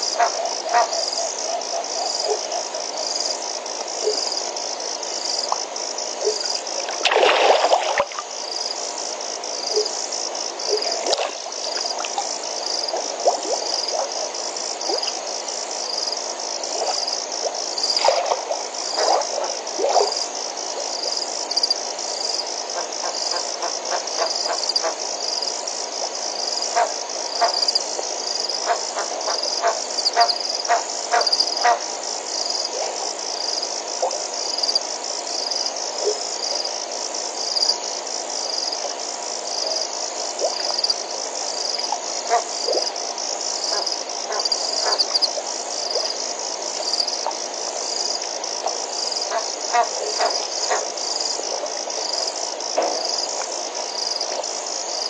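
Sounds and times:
frogs calling: 0.0s - 4.4s, 5.1s - 25.6s, 26.4s - 36.7s, 38.4s - 55.0s
insects trilling: 0.0s - 55.0s.

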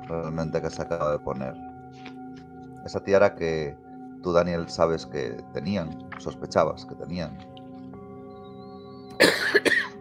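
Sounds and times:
ambient background music: 0.0s - 10.0s
person coughing: 9.2s - 10.0s.

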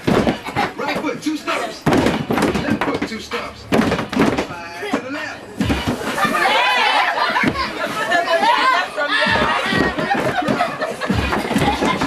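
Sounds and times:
heavy thuds: 0.0s - 1.2s, 1.8s - 6.2s, 9.3s - 12.0s
children talking and calling out: 4.6s - 12.0s.

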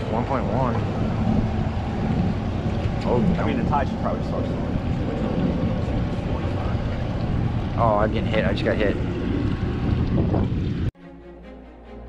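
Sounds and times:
open water: 0.0s - 10.9s
wind buffeting microphone: 0.0s - 10.9s.

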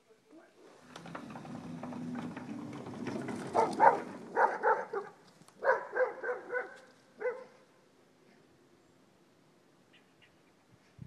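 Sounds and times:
dog yipping: 3.6s - 7.6s.

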